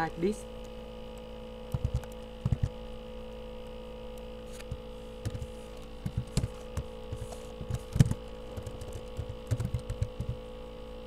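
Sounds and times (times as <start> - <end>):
electrical mains hum: 0.0 - 11.0
keyboard and mouse clicks: 1.7 - 2.8, 4.6 - 10.4.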